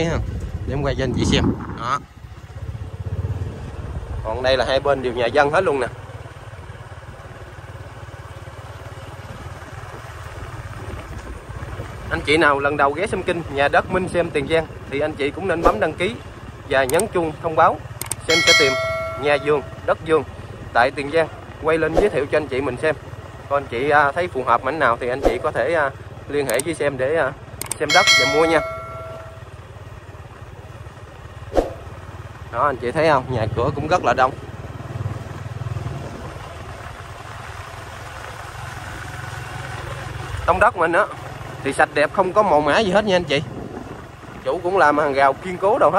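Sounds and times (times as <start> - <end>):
motorbike engine running: 0.0 - 45.9
wind and road noise: 0.0 - 45.9.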